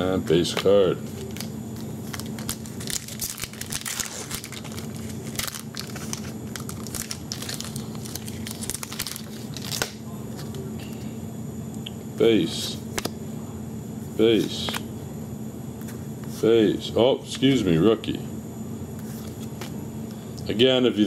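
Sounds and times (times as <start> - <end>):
foil wrapper tearing and crinkling: 1.2 - 10.0.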